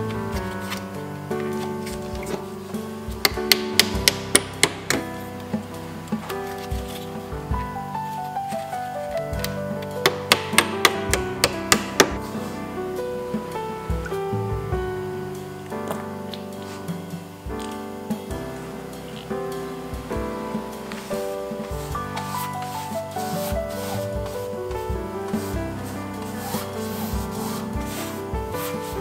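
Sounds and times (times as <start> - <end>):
background music: 0.0 - 29.0
hammer tapping wooden wedge: 3.2 - 5.1, 9.4 - 12.2
brush scrubbing canvas: 20.9 - 24.6, 25.2 - 29.0.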